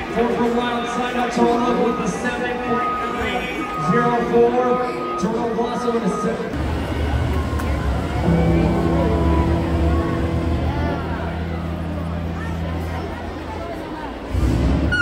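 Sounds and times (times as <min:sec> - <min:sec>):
heavy vehicle engine rumbling: 0:06.4 - 0:15.0.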